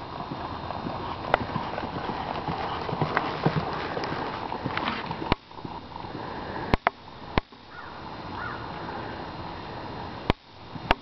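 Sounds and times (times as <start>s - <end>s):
horse hoofbeats on dirt: 0.0s - 6.1s
steady hiss: 0.0s - 11.0s.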